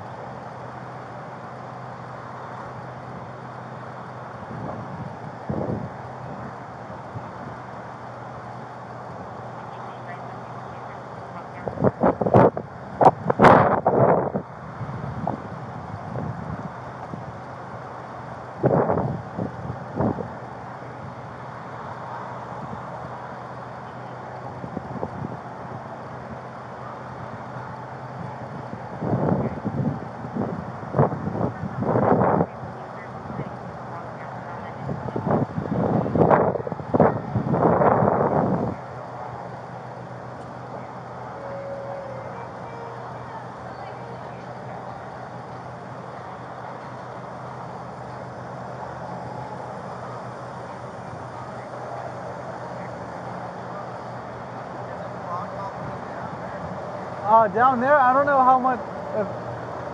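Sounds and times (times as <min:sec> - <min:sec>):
street noise: 0:00.0 - 0:59.9
wind on microphone: 0:04.4 - 0:07.6, 0:11.6 - 0:17.4, 0:18.6 - 0:20.4, 0:28.2 - 0:33.6, 0:34.8 - 0:38.8
indistinct voices: 0:40.6 - 0:59.4.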